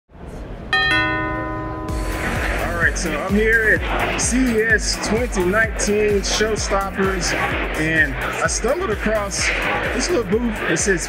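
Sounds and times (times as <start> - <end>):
bell-like chime notes: 0.8 - 3.8
low musical swell: 0.8 - 8.4.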